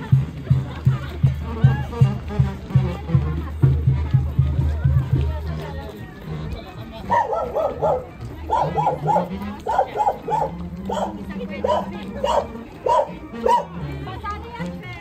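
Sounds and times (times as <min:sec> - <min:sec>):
dog barking: 0:07.1 - 0:13.7.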